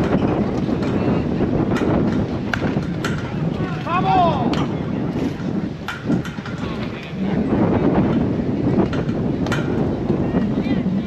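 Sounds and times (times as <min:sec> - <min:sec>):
wind on microphone: 0:00.0 - 0:11.0
bat striking ball: 0:01.8 - 0:03.3.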